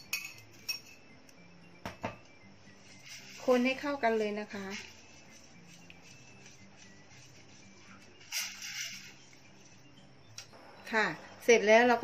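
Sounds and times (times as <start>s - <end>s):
whisk stirring in metal pot: 2.9s - 9.8s.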